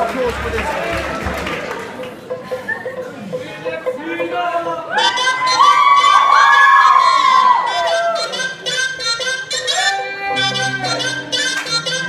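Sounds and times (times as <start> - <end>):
crowd talking in hall: 0.0 - 12.0.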